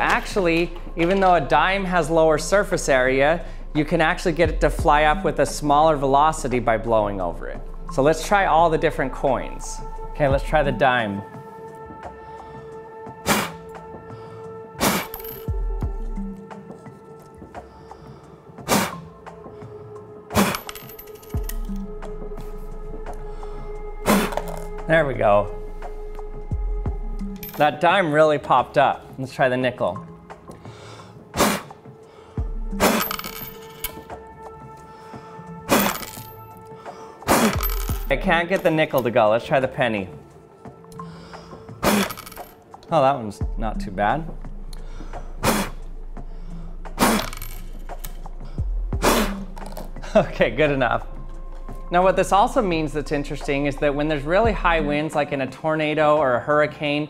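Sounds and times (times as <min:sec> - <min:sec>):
background music: 0:00.0 - 0:57.0
hard puff of breath: 0:17.8 - 0:19.0, 0:44.8 - 0:47.3, 0:48.4 - 0:49.5
coin popping into cup: 0:24.2 - 0:24.7, 0:32.8 - 0:34.0, 0:35.7 - 0:36.3, 0:37.4 - 0:38.7, 0:41.8 - 0:42.5, 0:47.0 - 0:48.2, 0:49.6 - 0:49.9.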